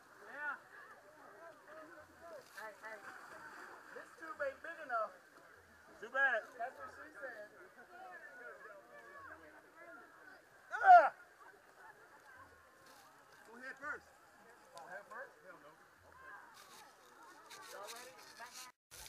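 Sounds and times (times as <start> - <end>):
scraping and rustling: 16.6 - 19.0.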